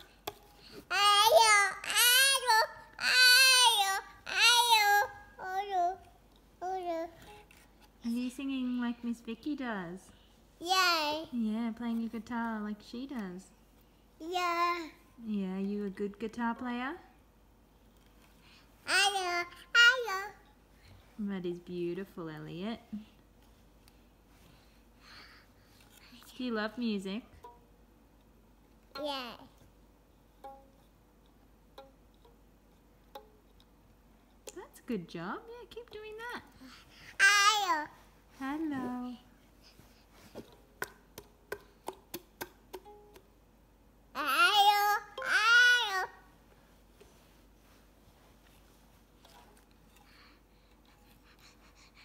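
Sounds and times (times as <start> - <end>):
toddler babbling: 0.9 - 6.0, 6.6 - 7.2, 10.6 - 11.3, 14.2 - 15.0, 18.9 - 20.4, 29.0 - 29.5, 37.2 - 38.0, 44.2 - 46.2
ukulele strings plucked: 40.8 - 43.4.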